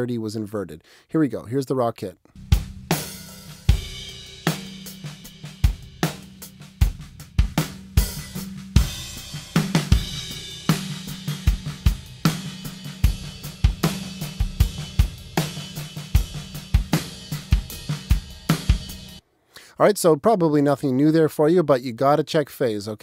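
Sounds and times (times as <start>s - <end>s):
hi-hat and cymbals: 2.4s - 19.2s.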